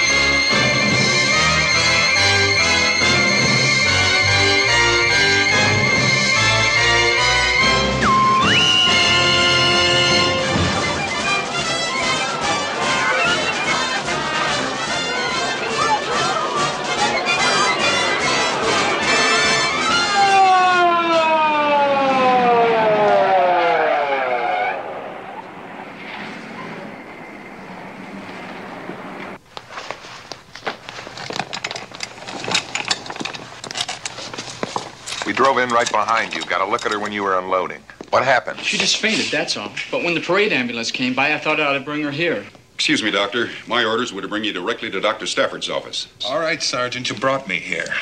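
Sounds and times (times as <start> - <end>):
brass marching band music: 0.0 - 25.0
ambulance siren winding down: 0.0 - 28.9.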